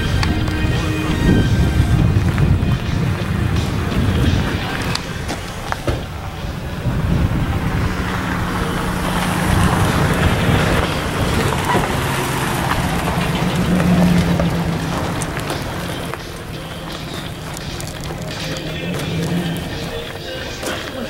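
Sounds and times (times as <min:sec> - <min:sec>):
car engine running: 0:00.0 - 0:21.0.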